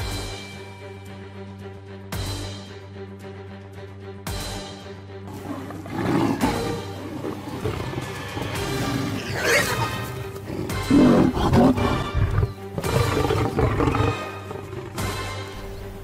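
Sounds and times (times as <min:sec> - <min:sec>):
background music: 0:00.0 - 0:16.0
lion growling: 0:05.3 - 0:16.0.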